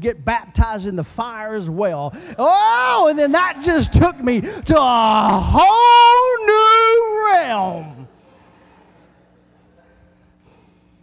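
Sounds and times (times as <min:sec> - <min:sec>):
low electrical hum: 0:00.0 - 0:11.0
man shouting: 0:02.4 - 0:08.1
breath into microphone: 0:08.2 - 0:09.2, 0:09.8 - 0:11.0.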